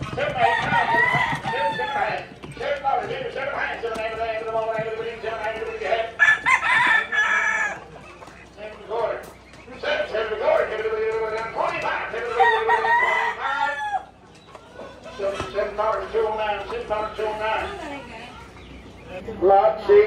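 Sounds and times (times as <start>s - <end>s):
chickens clucking: 0.0s - 20.0s
roosters crowing: 0.0s - 20.0s.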